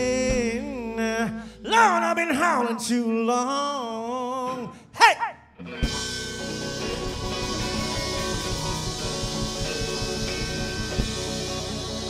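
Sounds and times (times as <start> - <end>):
blues band playing: 0.0 - 2.2, 5.6 - 12.0
person singing: 0.0 - 5.4
electric guitar: 5.6 - 12.0
drum kit: 5.8 - 12.0.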